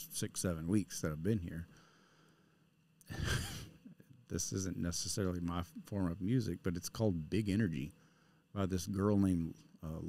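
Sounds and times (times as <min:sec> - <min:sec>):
man sighing: 0:03.1 - 0:03.8.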